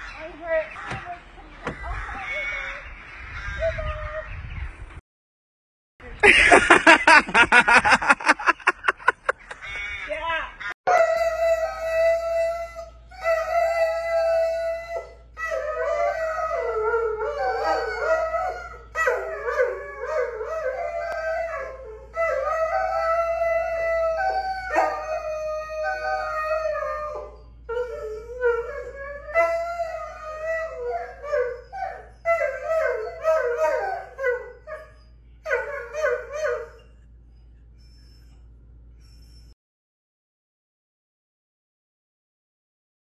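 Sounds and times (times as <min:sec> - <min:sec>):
dogs howling: 0:10.9 - 0:36.9.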